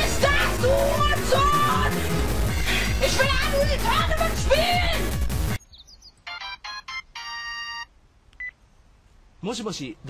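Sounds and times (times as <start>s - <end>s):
telephone ringing: 6.2s - 8.5s.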